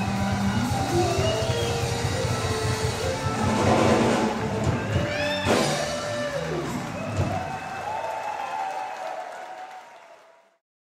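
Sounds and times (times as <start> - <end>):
live band final note: 0.0 - 7.8
audience applauding: 0.0 - 10.6.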